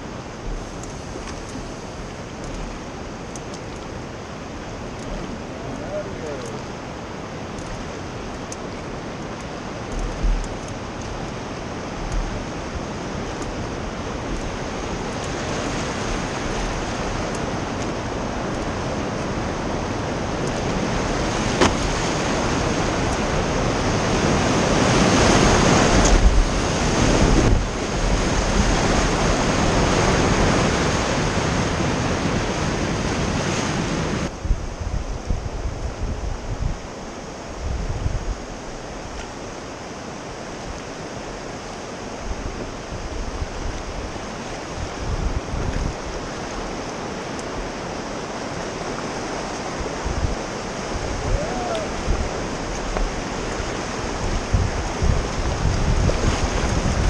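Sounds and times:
wind thumps on microphone: 0:00.0 - 0:02.7, 0:09.9 - 0:11.3, 0:20.2 - 0:36.9, 0:42.2 - 0:46.8, 0:49.7 - 0:57.0
whitewater rushing: 0:00.0 - 0:34.3, 0:38.4 - 0:57.0.

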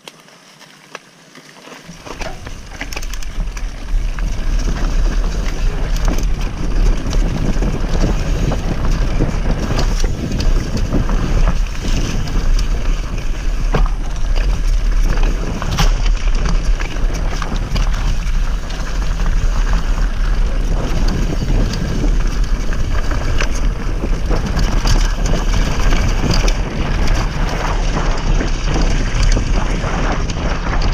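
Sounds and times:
tyres crunching over leaves: 0:00.0 - 0:30.5
bike knocking and rattling: 0:00.0 - 0:30.9
wind rumbling on microphone: 0:01.9 - 0:30.9.

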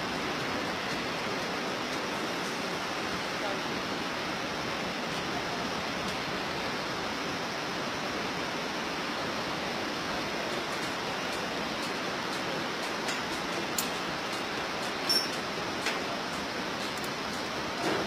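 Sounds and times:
fast river rushing: 0:00.0 - 0:18.0.

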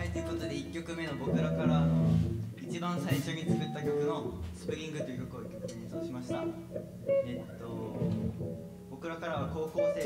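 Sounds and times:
electric guitars and bass plucked: 0:00.0 - 0:10.0.

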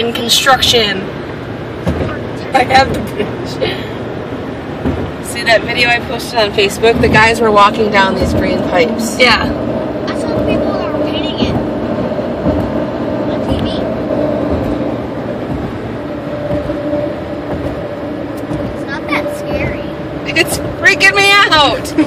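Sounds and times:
car road drone from inside: 0:00.0 - 0:22.0.

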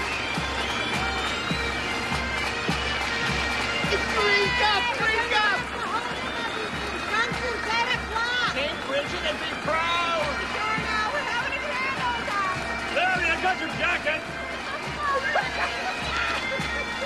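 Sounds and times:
band music: 0:00.0 - 0:17.0
crowd calling and shouting: 0:00.0 - 0:17.0
steady low drum beat: 0:00.0 - 0:17.0.

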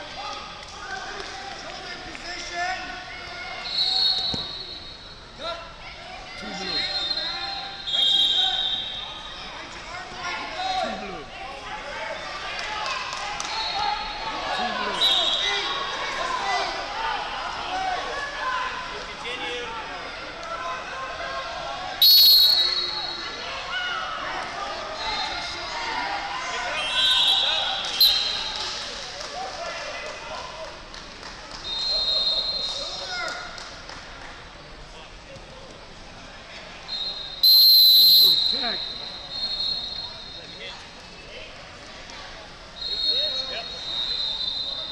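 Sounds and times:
voices calling and shouting: 0:02.4 - 0:29.0
whistle blast: 0:06.6 - 0:09.1, 0:22.0 - 0:23.2, 0:26.9 - 0:28.6, 0:36.9 - 0:40.5, 0:42.8 - 0:44.9.

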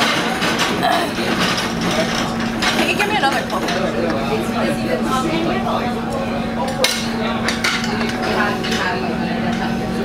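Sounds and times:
dishes and cutlery clinking: 0:00.0 - 0:04.3, 0:06.6 - 0:09.8
indistinct voices: 0:00.0 - 0:10.0.

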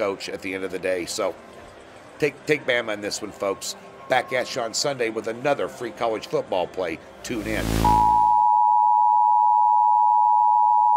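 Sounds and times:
rush of noise: 0:07.3 - 0:08.4
electronic test tone beep: 0:07.3 - 0:10.9.

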